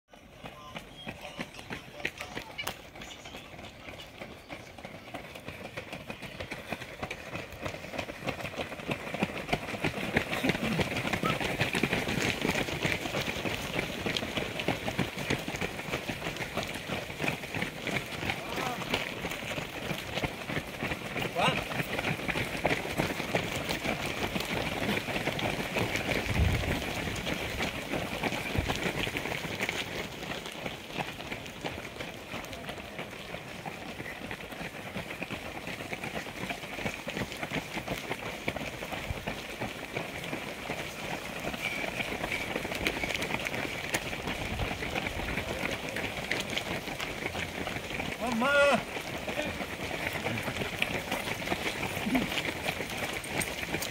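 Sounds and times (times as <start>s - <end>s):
runners' footsteps on asphalt: 0.1s - 53.9s.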